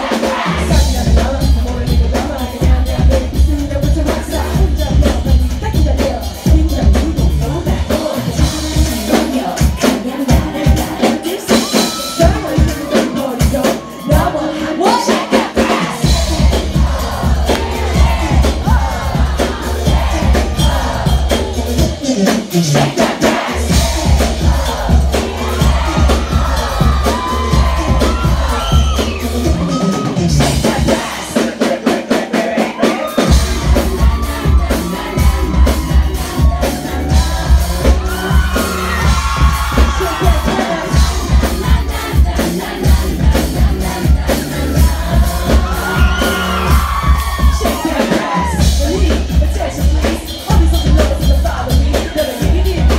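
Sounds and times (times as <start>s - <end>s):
audience screaming and whooping: 0.0s - 3.2s, 6.0s - 52.9s
heavy pulsing bass beat: 0.0s - 11.3s, 15.7s - 31.4s, 33.3s - 52.9s
person singing: 0.0s - 52.9s.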